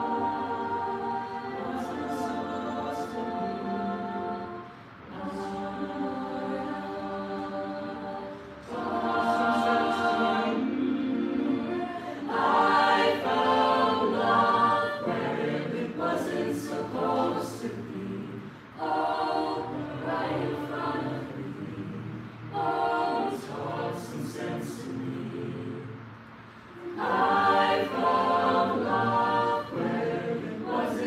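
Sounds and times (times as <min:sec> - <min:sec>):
a cappella group singing chords: 0:00.0 - 0:31.0.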